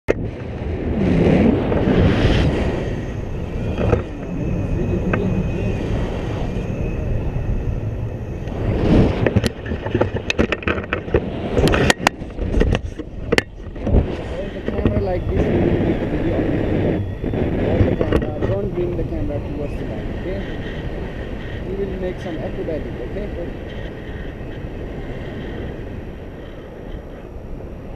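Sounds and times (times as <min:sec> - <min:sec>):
loud wind rumble on microphone: 0:00.1 - 0:27.9
sharp clicks and knocks: 0:09.2 - 0:14.0.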